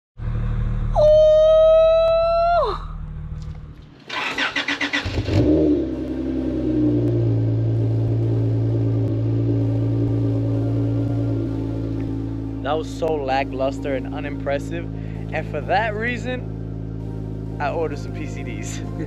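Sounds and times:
car engine idling: 0.2 - 1.4, 2.9 - 19.0
starter motor cranking: 3.8 - 5.6
tone sliding down in pitch: 7.7 - 14.5.

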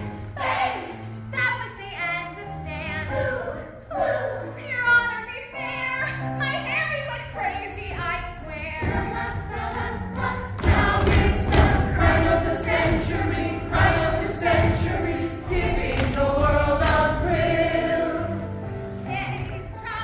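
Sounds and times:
chorus singing with accompaniment: 0.0 - 1.2, 8.5 - 20.0
dancers' feet thudding on stage: 8.6 - 17.2.

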